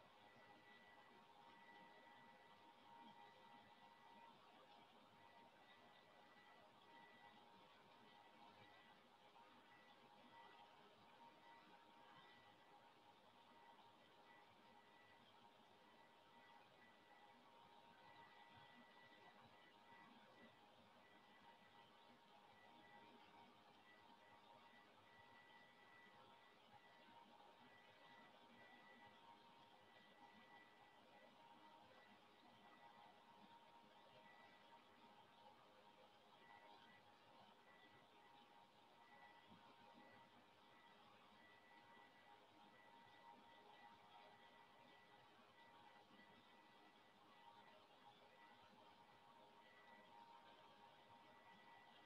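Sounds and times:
faint high-pitched whine: 0.0s - 52.0s.

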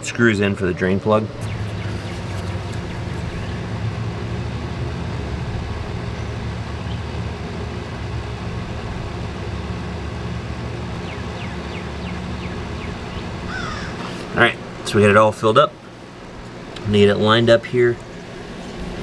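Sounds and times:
low engine hum: 0.0s - 19.0s.

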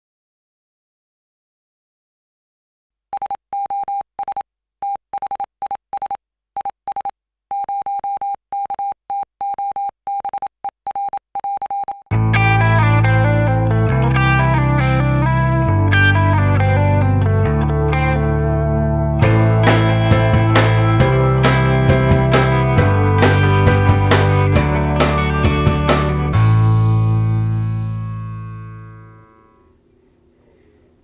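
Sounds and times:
morse code beeps: 3.2s - 12.0s
loud music with bass line: 12.1s - 29.2s.

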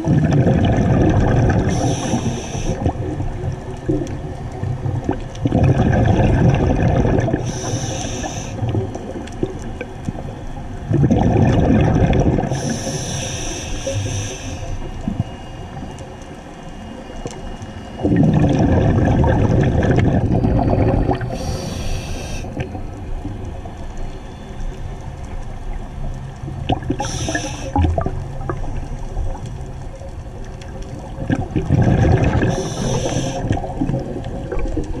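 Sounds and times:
gurgling exhaled bubbles: 0.0s - 15.7s, 18.0s - 23.6s, 26.4s - 35.0s
diver breathing through regulator: 1.6s - 2.9s, 7.3s - 8.7s, 12.4s - 15.0s, 21.3s - 22.6s, 26.9s - 27.8s, 31.9s - 33.6s.

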